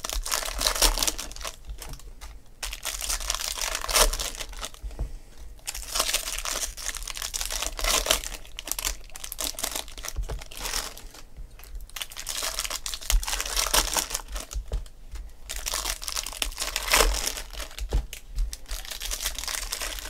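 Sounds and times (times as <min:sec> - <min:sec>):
plastic wrappers crinkling: 0:00.0 - 0:04.8, 0:05.6 - 0:20.0.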